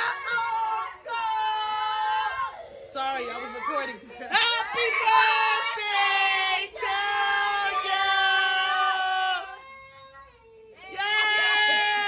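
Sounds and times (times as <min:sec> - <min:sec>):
people singing and shouting: 0:04.2 - 0:09.8.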